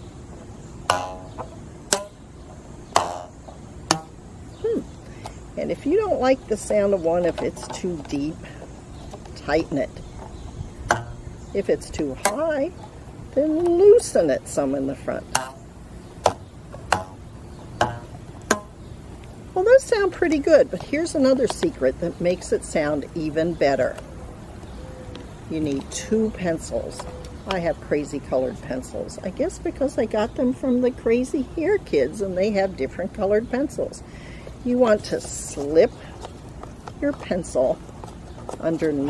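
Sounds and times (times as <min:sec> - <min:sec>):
rubber bands plucked: 0:00.8 - 0:02.2, 0:02.9 - 0:04.2, 0:10.8 - 0:11.4, 0:15.3 - 0:18.8.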